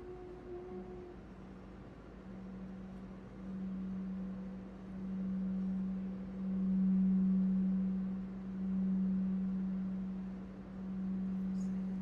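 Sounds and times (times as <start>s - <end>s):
singing bowl humming: 0.0s - 12.0s.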